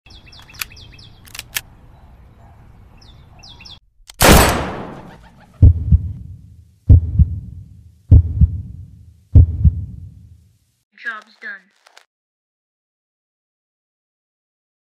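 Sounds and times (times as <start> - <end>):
birds chirping: 0.1 - 3.9
loud gunshot: 4.2 - 5.1
slow heartbeat thumps: 5.6 - 10.3.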